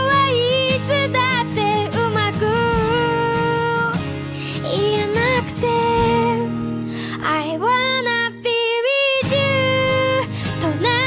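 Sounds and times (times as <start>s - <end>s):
soft instrumental backing: 0.0s - 8.4s
woman singing pop ballad: 0.0s - 11.0s.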